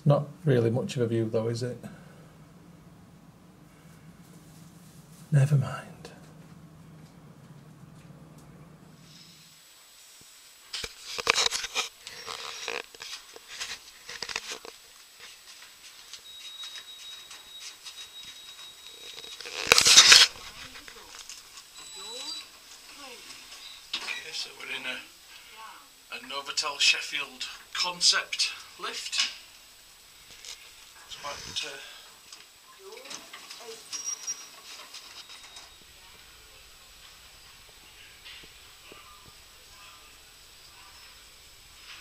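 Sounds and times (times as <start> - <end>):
footsteps: 3.7 - 8.4, 33.3 - 42.0
handheld camera rustling and clicks: 10.8 - 14.8.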